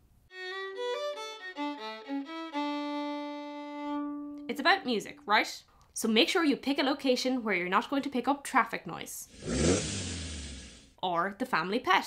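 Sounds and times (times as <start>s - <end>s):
fiddle playing quick notes: 0.3s - 4.5s.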